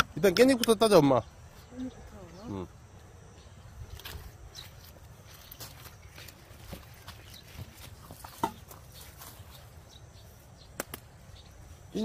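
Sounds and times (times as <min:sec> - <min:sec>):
leaves rustling: 0:03.6 - 0:12.0.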